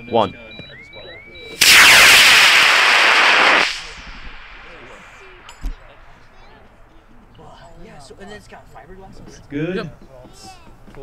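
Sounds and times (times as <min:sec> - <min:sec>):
faint electronic beeping: 0:00.0 - 0:02.0
rocket motor roaring: 0:01.6 - 0:06.3.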